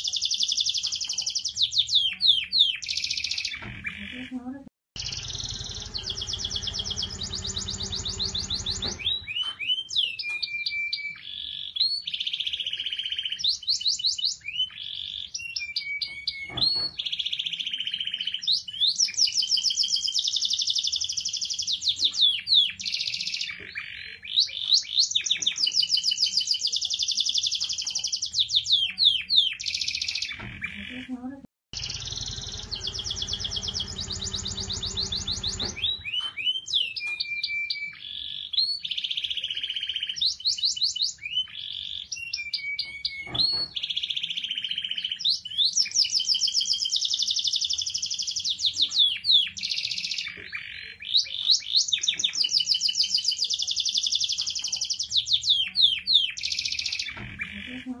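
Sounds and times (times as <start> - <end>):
canary singing: 0.0 - 58.0
low rumble: 5.0 - 9.3, 31.8 - 36.1.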